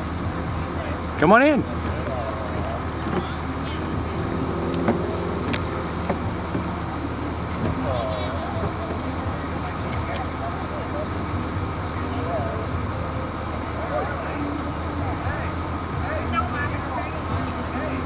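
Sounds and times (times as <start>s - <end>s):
bus engine idling: 0.0s - 18.0s
faint voices: 0.0s - 18.0s.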